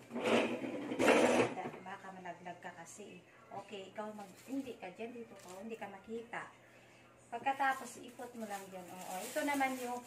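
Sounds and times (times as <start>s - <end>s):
plastic bag rustling: 4.0s - 6.0s, 7.4s - 10.0s.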